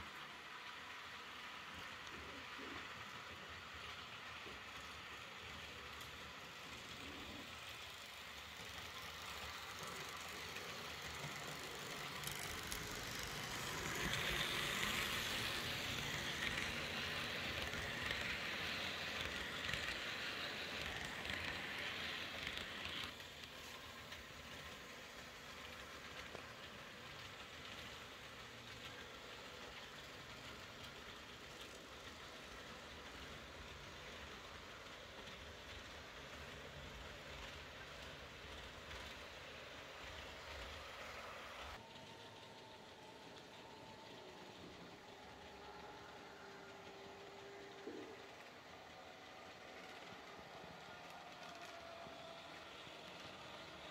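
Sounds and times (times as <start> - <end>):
model train motor and wheels: 0.0 - 53.9.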